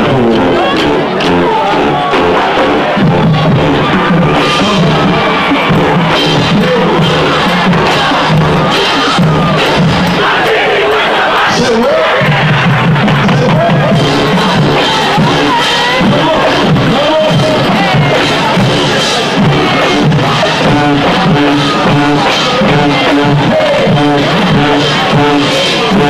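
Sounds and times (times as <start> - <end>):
crowd shouting and cheering: 0.0 - 26.0
drum strikes: 0.0 - 26.0
marching band playing: 0.0 - 26.0.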